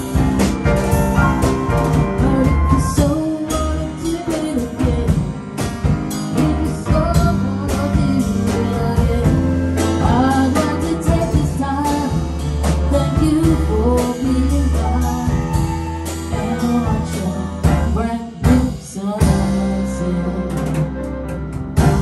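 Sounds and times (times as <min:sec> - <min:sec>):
flute melody: 0:00.0 - 0:05.0, 0:13.2 - 0:18.2, 0:19.2 - 0:22.0
bass: 0:00.0 - 0:22.0
drum kit with cymbal strokes: 0:00.0 - 0:22.0
grand piano: 0:00.0 - 0:22.0.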